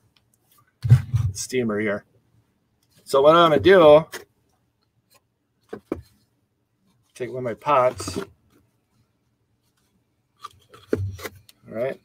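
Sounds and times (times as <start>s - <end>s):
paper cups rustling: 7.2s - 8.5s.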